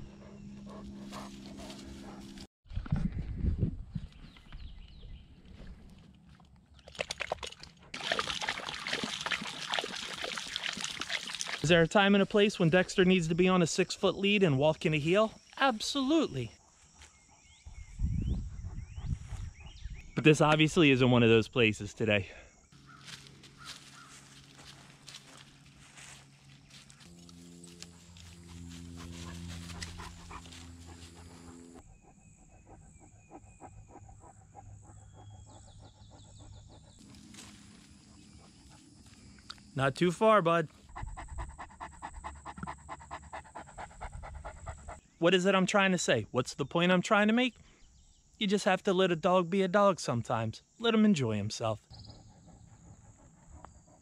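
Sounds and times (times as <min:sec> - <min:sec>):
dog panting: 0:00.0 - 0:02.5, 0:28.6 - 0:37.0, 0:40.7 - 0:45.0, 0:52.0 - 0:54.0
high insect drone: 0:20.3 - 0:34.0, 0:37.0 - 0:45.0
low rumble: 0:23.2 - 0:31.8.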